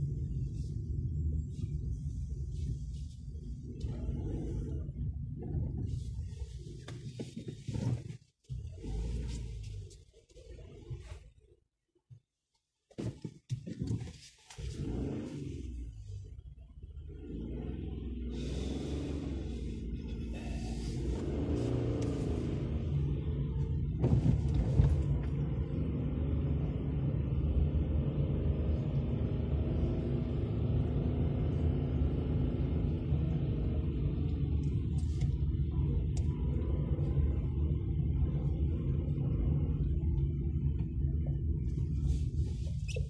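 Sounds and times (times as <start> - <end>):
car engine: 0.0 - 11.6, 13.0 - 43.0
road rumble: 0.0 - 43.0.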